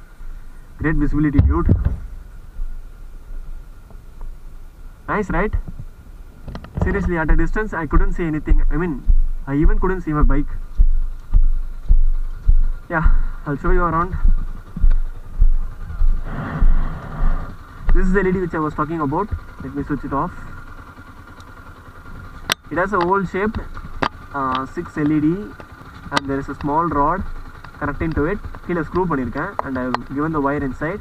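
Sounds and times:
motorcycle engine rumble: 0.0s - 31.0s
footstep thumps on camera: 1.3s - 2.8s, 6.5s - 18.0s
wind noise on microphone: 7.9s - 18.0s
hissing noise: 15.8s - 18.1s.

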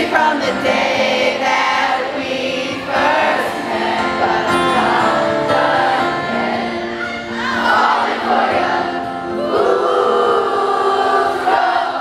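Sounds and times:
acoustic guitar: 0.0s - 12.0s
crowd singing along: 0.0s - 12.0s.

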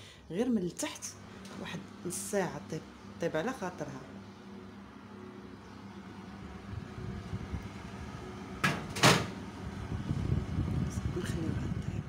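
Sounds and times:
oven door opening: 7.2s - 9.9s.

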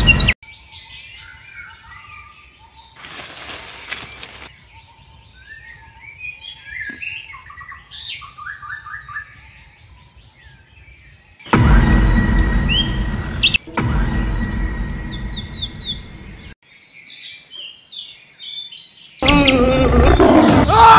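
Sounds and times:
birds chirping: 0.0s - 11.5s, 12.2s - 20.9s.

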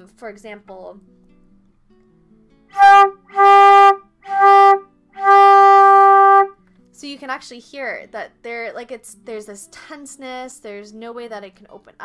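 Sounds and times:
flute with pinched tone: 2.8s - 6.5s.

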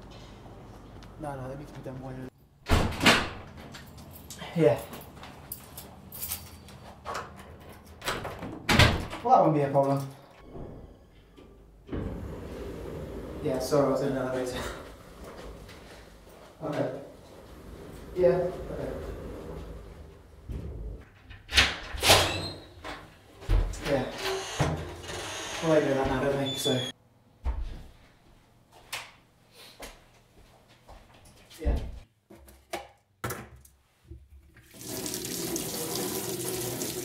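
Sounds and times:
fire door slamming shut: 2.6s - 3.5s
lift doors sliding shut: 11.9s - 16.1s, 17.1s - 21.0s.

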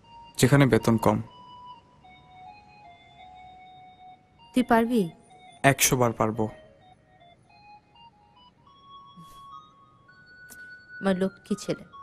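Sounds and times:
soft ambient music: 0.0s - 12.0s.

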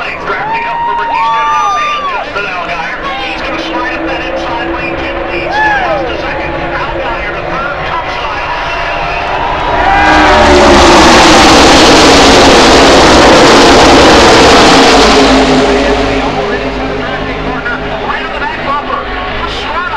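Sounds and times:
race cars passing at full throttle: 0.0s - 19.9s.

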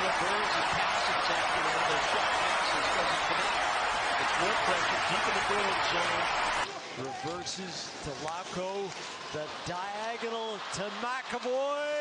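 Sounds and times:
arena crowd roar: 0.0s - 7.5s, 9.2s - 12.0s.

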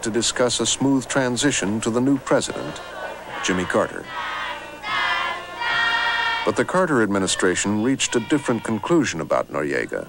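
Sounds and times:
choir singing an anthem: 0.0s - 9.2s.

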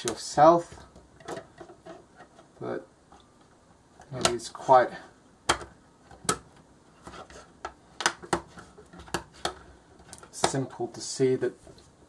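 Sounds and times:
plastic pieces snapping together: 5.5s - 6.6s, 7.6s - 10.6s.

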